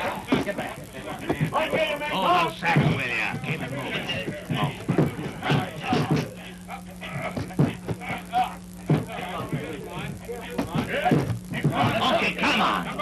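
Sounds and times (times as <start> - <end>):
indistinct voices: 0.0 - 13.0
steady low hum: 0.0 - 13.0
knocks of crates being handled: 2.7 - 6.4.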